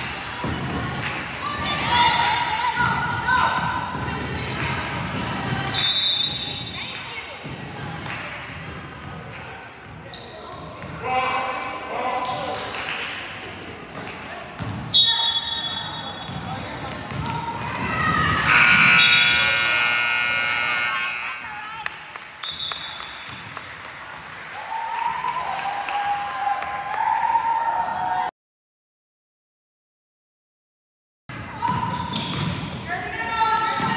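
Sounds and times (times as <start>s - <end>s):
referee's whistle: 5.7s - 6.8s, 14.9s - 16.3s, 18.4s - 21.3s, 22.4s - 23.3s
scoreboard buzzer: 18.4s - 21.4s.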